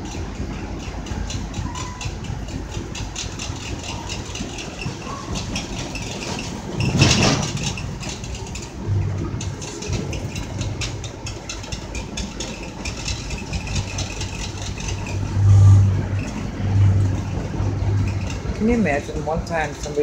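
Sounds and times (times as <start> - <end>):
short rail clicks: 0.0 - 18.8
train running rumble: 0.0 - 20.0
low hum: 6.0 - 19.4.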